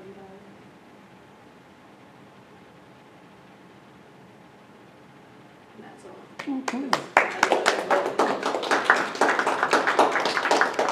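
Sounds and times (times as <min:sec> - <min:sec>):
people applauding: 0:06.4 - 0:10.9.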